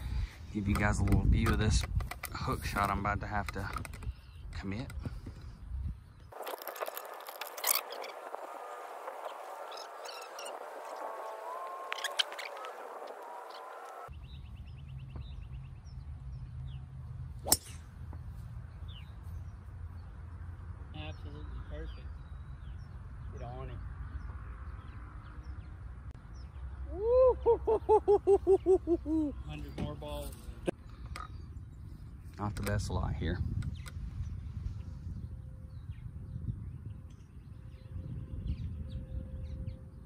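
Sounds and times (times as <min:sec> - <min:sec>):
wind rumble on microphone: 0:00.0 - 0:16.0, 0:29.6 - 0:40.0
golf club striking ball: 0:17.4 - 0:17.9.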